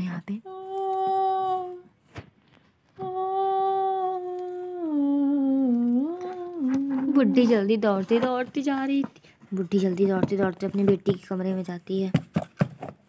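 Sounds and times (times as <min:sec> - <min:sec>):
person humming eerie moan: 0:00.5 - 0:01.9, 0:03.0 - 0:07.4.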